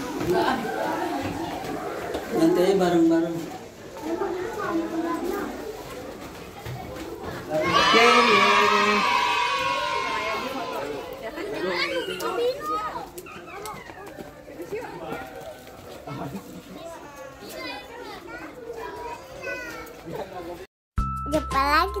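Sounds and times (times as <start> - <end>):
children and adults chattering: 0.0 - 20.7.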